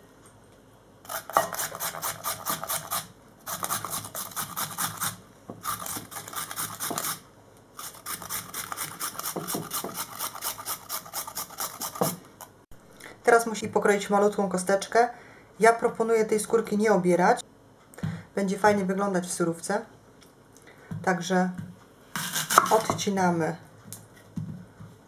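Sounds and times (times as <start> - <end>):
carrot grated on metal grater: 1.1 - 7.2, 7.8 - 12.2.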